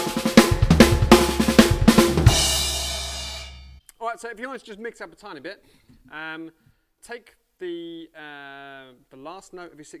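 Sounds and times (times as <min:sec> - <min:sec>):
snare and bass drum fill: 0:00.0 - 0:03.8
crash cymbal ringing: 0:02.3 - 0:03.8.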